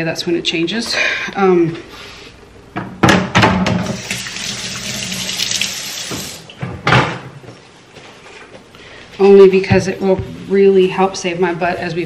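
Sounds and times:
kitchen tap running into sink: 3.8 - 6.5.

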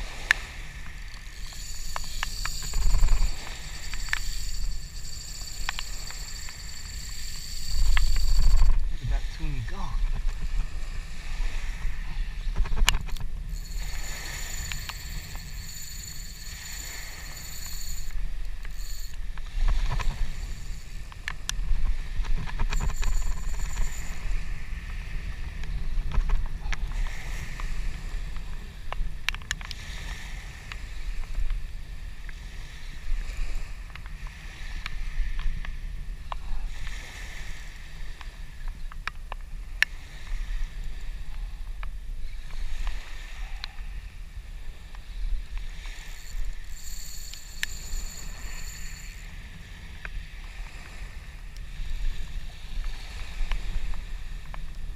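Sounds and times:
wind buffeting microphone: 0.0 - 36.3
small waves lapping on beach: 0.0 - 54.9
faint high thin whine: 0.3 - 10.4, 12.8 - 25.8, 45.7 - 50.3.

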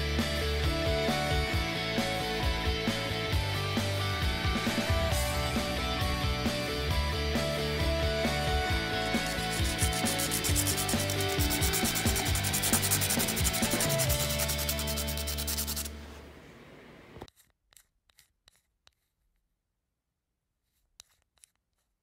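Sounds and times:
background music: 0.0 - 16.0
pencil rubbing on sandpaper: 9.0 - 16.0.

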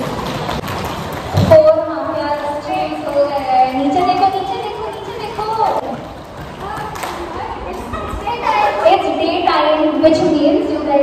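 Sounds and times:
young women talking: 1.5 - 6.0, 6.6 - 11.0.

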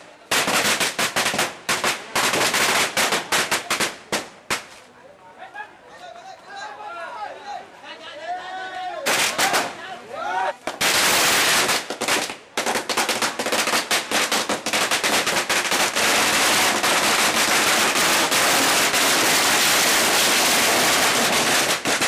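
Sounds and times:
firecrackers crackling: 0.0 - 5.0, 9.0 - 9.8, 10.6 - 22.0.

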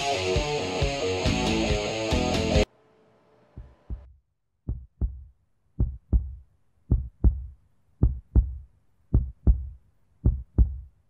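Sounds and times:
heartbeat thumps: 3.6 - 4.1, 4.7 - 10.9.

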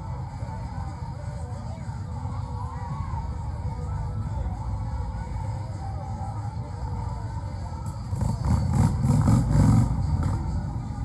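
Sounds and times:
motorcycle engine revving: 8.1 - 10.5.

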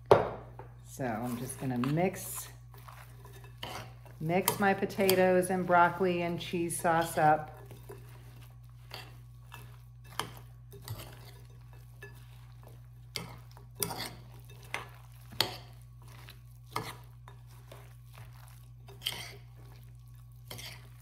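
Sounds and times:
utensil scraping glass bowl: 1.1 - 21.0.

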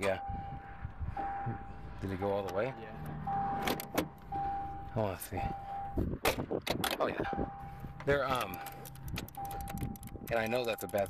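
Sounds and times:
steady high tone: 0.0 - 6.1.

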